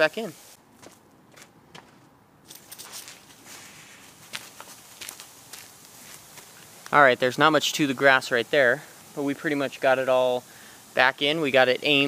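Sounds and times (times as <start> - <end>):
water spraying from sprinkler: 0.0 - 0.6, 2.5 - 12.0.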